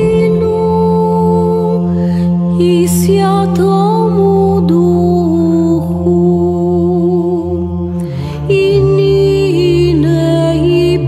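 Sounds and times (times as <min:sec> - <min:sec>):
chant melody over low drone: 0:00.0 - 0:11.0.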